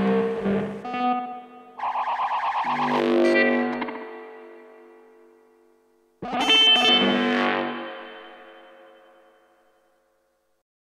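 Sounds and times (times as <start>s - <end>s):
distorted electric guitar chord ringing: 2.8s - 10.0s.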